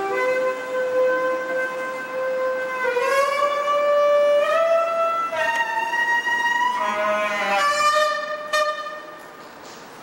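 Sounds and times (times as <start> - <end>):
clarinet playing solo: 0.0 - 9.2.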